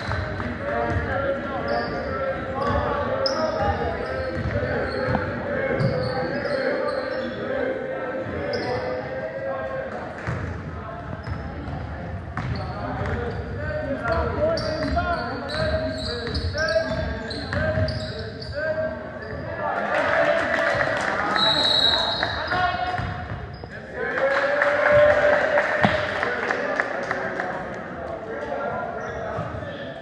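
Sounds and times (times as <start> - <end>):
sneakers squeaking: 0.0 - 7.5, 8.2 - 9.2, 10.3 - 19.6, 21.3 - 23.8, 28.8 - 30.0.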